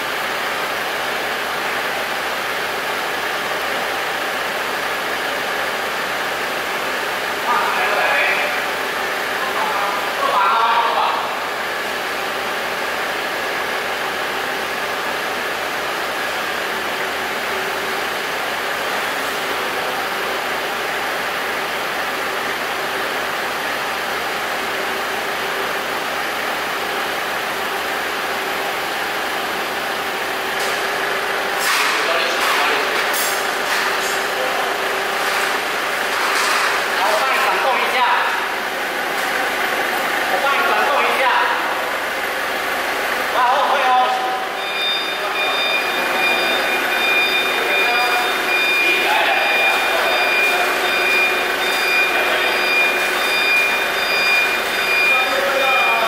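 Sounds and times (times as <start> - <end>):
steady mechanical hum: 0.0 - 56.0.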